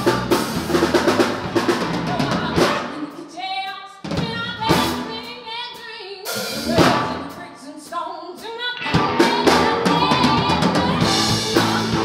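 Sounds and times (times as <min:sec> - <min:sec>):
live rock band playing: 0:00.0 - 0:03.2, 0:04.1 - 0:07.7, 0:08.6 - 0:12.0
woman singing: 0:01.6 - 0:12.0.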